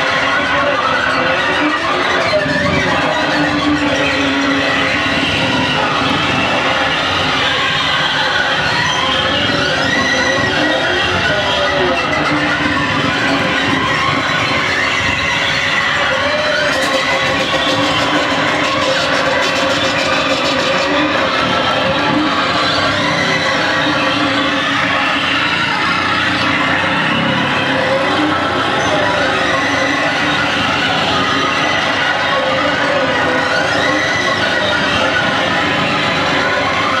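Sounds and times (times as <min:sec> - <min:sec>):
harsh electronic noise music: 0:00.0 - 0:37.0.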